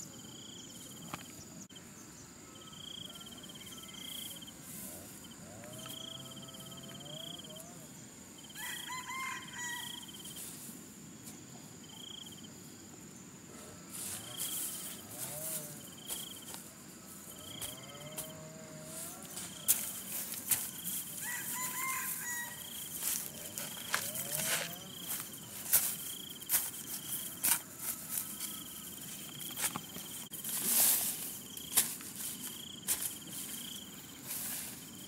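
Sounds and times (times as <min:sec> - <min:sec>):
insect chirping: 0:00.0 - 0:35.0
hand hoe chopping soil: 0:27.4 - 0:27.7, 0:31.7 - 0:33.3.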